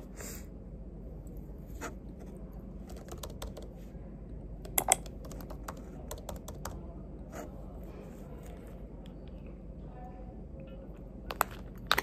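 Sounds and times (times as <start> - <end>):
laptop keyboard typing: 2.8 - 3.7, 4.7 - 6.8.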